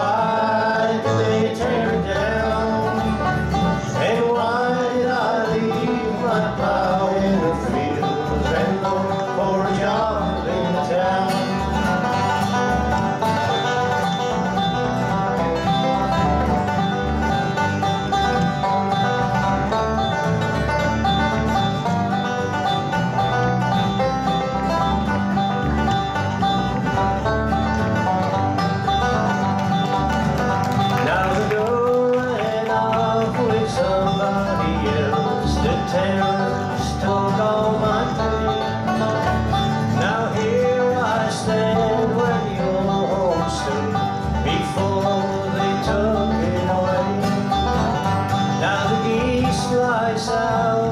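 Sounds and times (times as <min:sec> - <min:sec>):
acoustic guitar rhythm: 0:00.0 - 0:50.9
banjo picking: 0:00.0 - 0:50.9
upright bass: 0:00.0 - 0:50.9.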